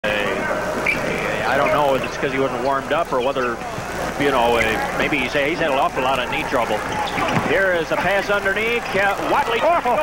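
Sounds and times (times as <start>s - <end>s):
murmur of arena crowd: 0.0s - 10.0s
commentator talking: 1.2s - 10.0s.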